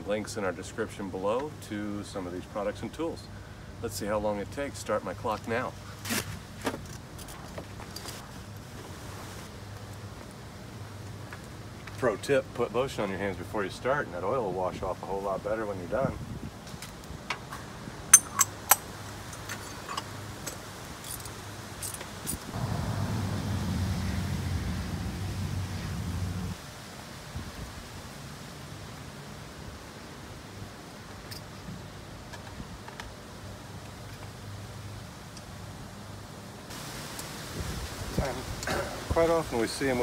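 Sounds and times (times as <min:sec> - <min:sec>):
steady background hiss: 0:00.0 - 0:40.0
hand tools clinking on metal: 0:18.1 - 0:22.4
low rumble: 0:22.6 - 0:26.6.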